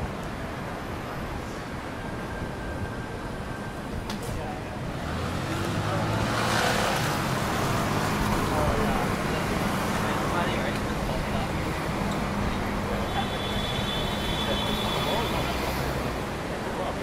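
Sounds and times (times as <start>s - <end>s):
road traffic engine hum: 0.0s - 17.0s
passers-by talking: 3.9s - 17.0s
vehicle passing by: 4.9s - 10.5s.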